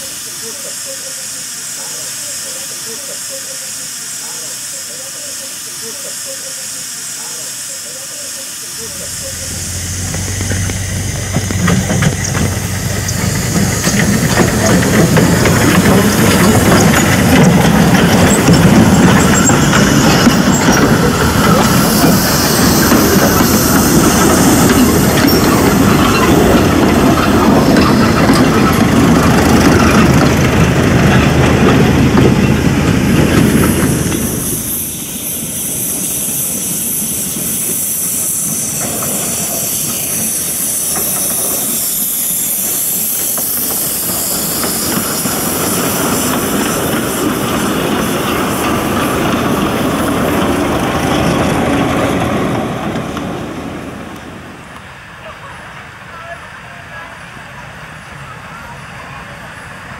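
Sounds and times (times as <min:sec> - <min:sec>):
steam hissing from locomotive: 0:00.0 - 0:59.9
carriages clattering over rails: 0:08.8 - 0:57.1.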